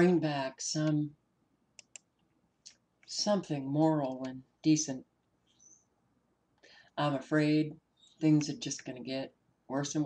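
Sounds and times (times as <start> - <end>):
faint computer mouse clicks: 1.8 - 3.1.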